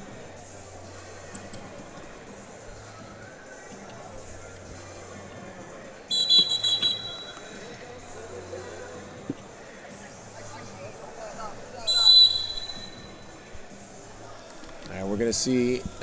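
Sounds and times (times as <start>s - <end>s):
referee's whistle blast: 6.1s - 7.4s, 11.8s - 13.3s.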